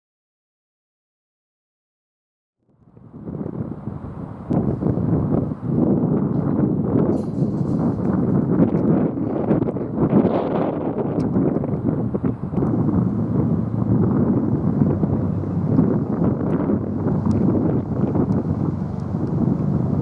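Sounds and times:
wind buffeting microphone: 0:02.7 - 0:20.0.

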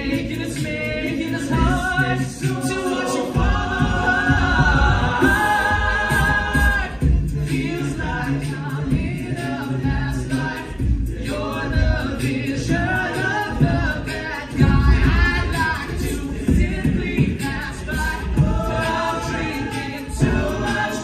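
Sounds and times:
deep vocal bass line: 0:00.0 - 0:21.0
male a cappella group singing: 0:00.0 - 0:21.0.

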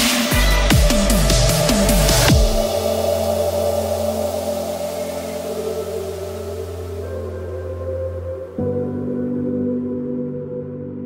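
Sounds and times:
dubstep music: 0:00.0 - 0:10.4
held low synth chord: 0:00.3 - 0:11.0.

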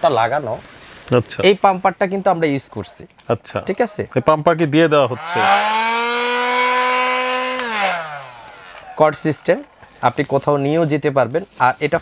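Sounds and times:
electric air pump whining: 0:05.1 - 0:09.8.

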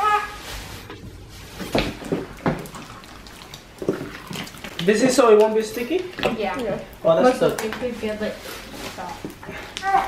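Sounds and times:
slime squishing: 0:01.5 - 0:10.0.

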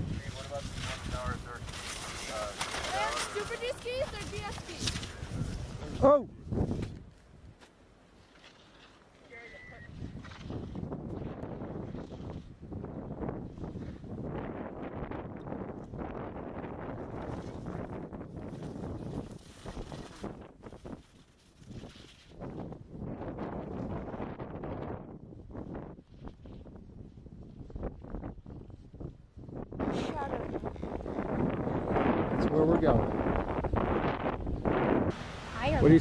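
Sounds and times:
skis scraping on snow: 0:00.0 - 0:06.0, 0:08.2 - 0:09.6, 0:17.2 - 0:22.7
wind buffeting microphone: 0:00.0 - 0:07.6, 0:09.8 - 0:36.0.

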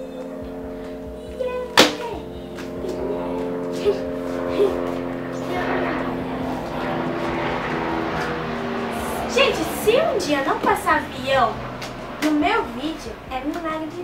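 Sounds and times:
airplane passing overhead: 0:00.0 - 0:14.0
music of steady held notes: 0:00.0 - 0:14.0.

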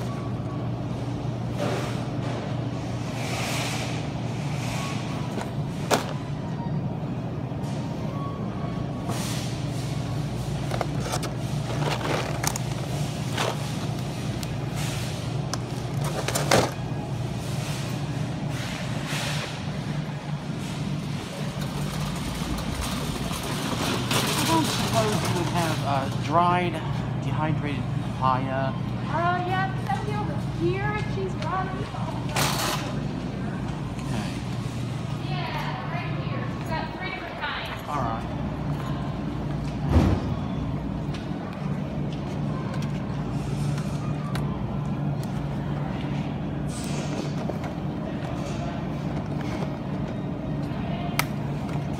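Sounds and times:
general store noise: 0:00.0 - 0:51.9
low machine hum: 0:00.0 - 0:51.9.

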